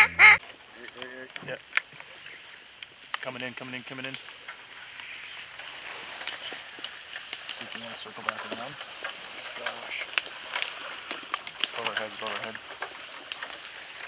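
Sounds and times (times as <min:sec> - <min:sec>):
duck quacks: 0:00.0 - 0:00.4
dry reeds rustling and crackling: 0:00.0 - 0:14.0.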